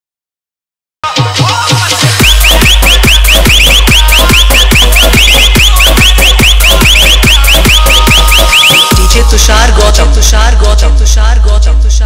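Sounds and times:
kick drum: 2.2s - 9.3s
rising synth chirps: 2.2s - 9.3s
heavy sub-bass: 2.2s - 12.0s.

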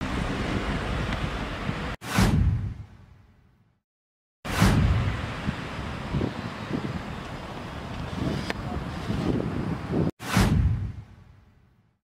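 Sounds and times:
street ambience: 0.0s - 3.8s, 4.5s - 12.0s
whoosh: 4.5s - 5.1s, 10.2s - 11.3s
wind buffeting microphone: 4.6s - 11.1s.

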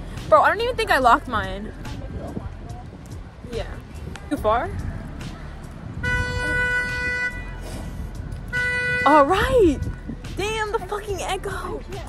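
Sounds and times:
car horn blast: 6.0s - 7.6s, 8.5s - 9.3s.

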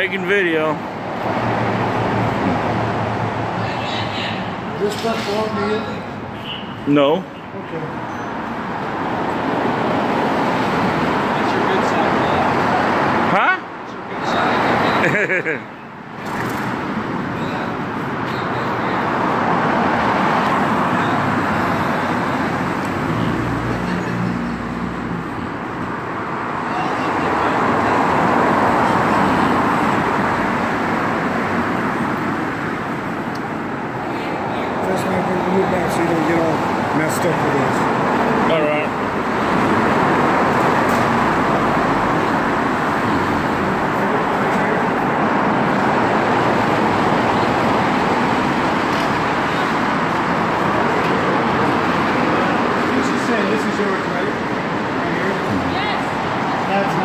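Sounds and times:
cars passing on street: 0.0s - 57.0s.

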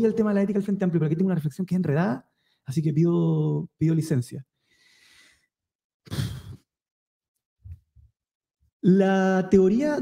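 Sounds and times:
man sighing: 6.1s - 6.6s.

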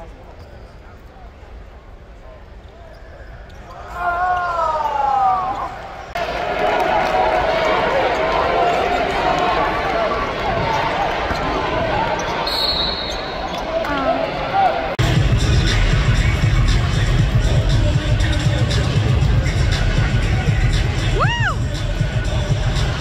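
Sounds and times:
crowd chatter: 0.0s - 23.0s
referee's whistle: 12.2s - 13.7s.

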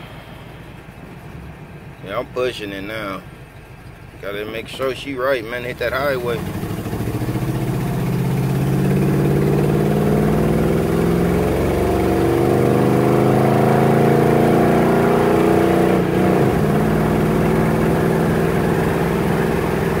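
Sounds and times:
car engine accelerating: 0.0s - 20.0s.

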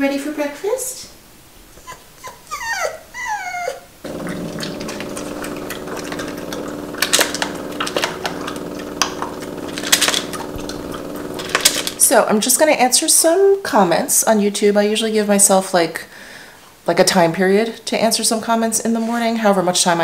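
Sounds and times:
dog whining: 1.8s - 6.4s
kibble clicking in plastic bowl: 4.1s - 12.0s
dog crunching dry kibble: 4.1s - 12.1s
steady hum: 4.1s - 12.5s.

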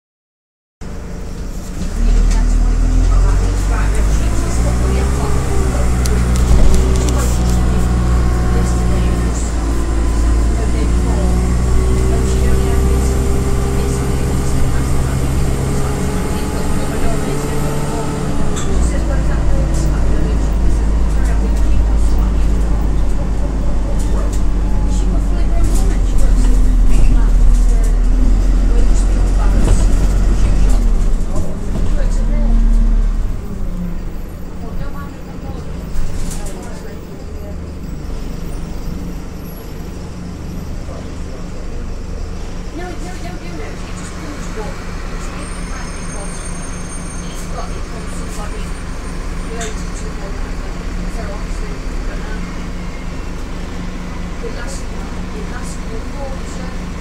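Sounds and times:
bus engine running: 0.8s - 57.0s
engine whine: 0.8s - 57.0s.

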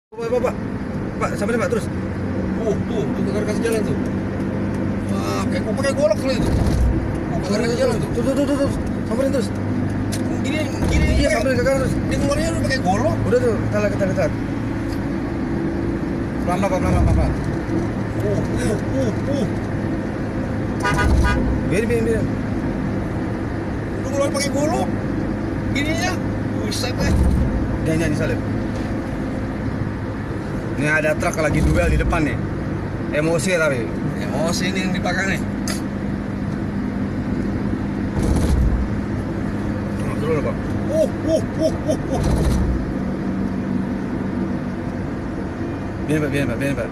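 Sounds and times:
vehicle engine and road noise: 0.0s - 46.9s.

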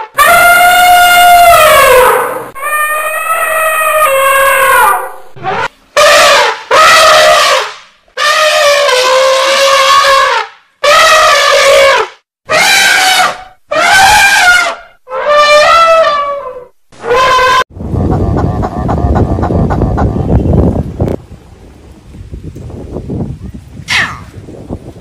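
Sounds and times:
elephant trumpeting: 0.1s - 17.6s.

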